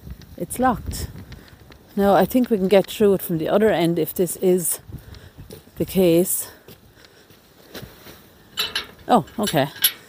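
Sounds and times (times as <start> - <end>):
metal gate latch clinking: 8.6 - 10.0.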